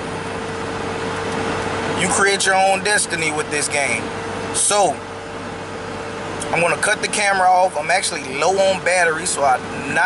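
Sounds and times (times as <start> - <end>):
constant low hum: 0.0 - 10.0
road and engine noise in car: 0.0 - 10.0.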